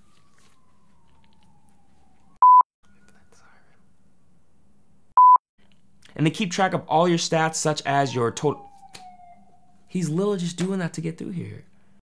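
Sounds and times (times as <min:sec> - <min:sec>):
short electronic beeps: 0:02.4 - 0:02.6, 0:05.2 - 0:05.4.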